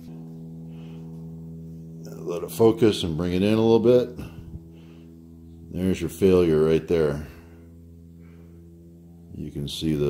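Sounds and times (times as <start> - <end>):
steady hum of held tones: 0.0 - 10.0.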